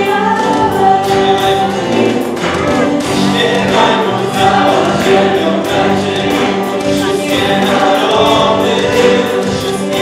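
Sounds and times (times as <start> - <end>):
drum kit playing: 0.0 - 10.0
group of voices singing: 0.0 - 10.0
keyboard: 0.0 - 10.0.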